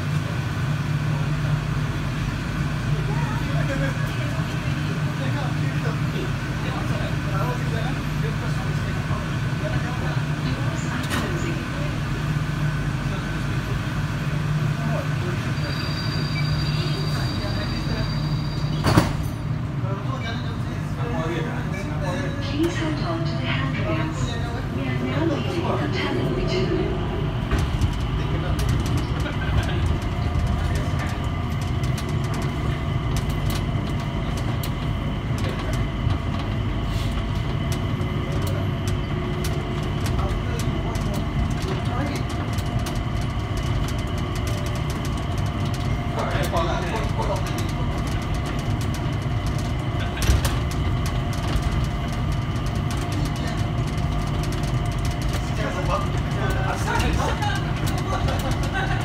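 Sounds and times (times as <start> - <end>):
train low rumble: 0.0 - 59.0.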